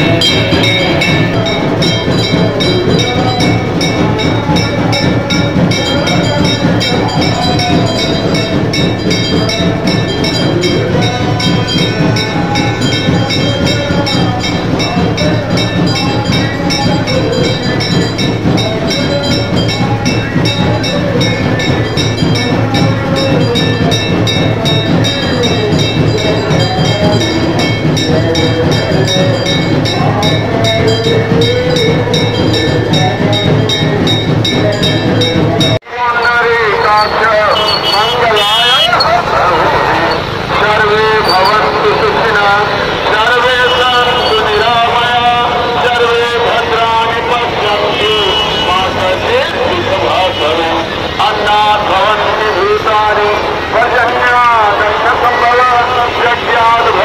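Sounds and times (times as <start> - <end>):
hand bell ringing rapidly: 0.0 - 35.8
devotional music: 0.0 - 57.0.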